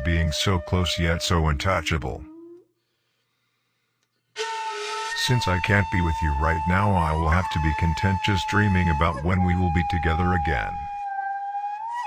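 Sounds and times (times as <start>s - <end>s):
hissy held high tone: 4.4s - 11.0s.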